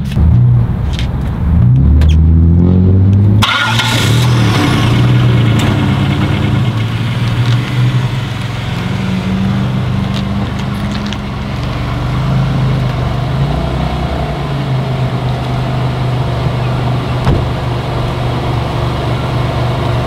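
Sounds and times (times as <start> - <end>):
car engine running: 3.1 - 12.1, 14.1 - 20.0.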